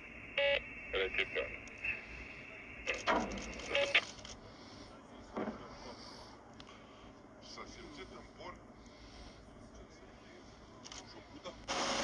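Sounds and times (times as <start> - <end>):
radio crackle: 0.4 - 4.4.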